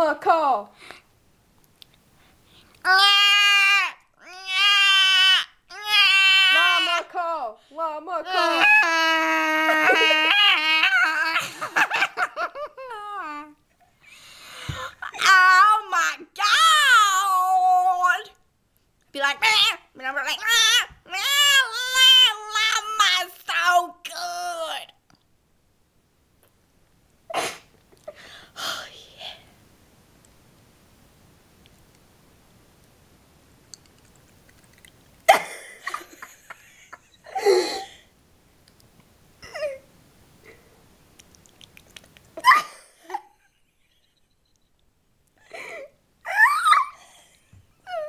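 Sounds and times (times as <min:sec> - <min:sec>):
girl squealing: 0:02.8 - 0:07.0, 0:08.3 - 0:11.4, 0:42.4 - 0:43.2, 0:46.3 - 0:47.1.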